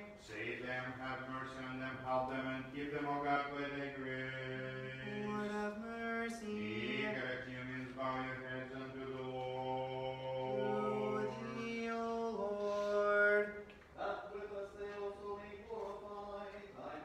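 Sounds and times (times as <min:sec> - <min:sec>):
low male voice chanting: 0:06.3 - 0:17.0.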